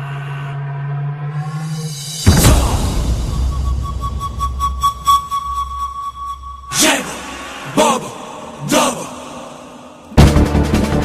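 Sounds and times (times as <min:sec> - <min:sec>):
low hum: 0:00.0 - 0:08.7
loud sudden hit: 0:02.3 - 0:04.4
high thin pulsing tone: 0:03.0 - 0:07.5.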